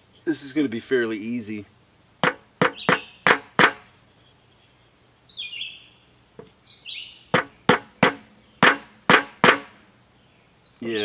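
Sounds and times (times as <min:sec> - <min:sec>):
bird chirping: 0:01.9 - 0:09.0, 0:10.0 - 0:11.0
hammer knocking on wood: 0:02.2 - 0:03.8, 0:07.3 - 0:09.8.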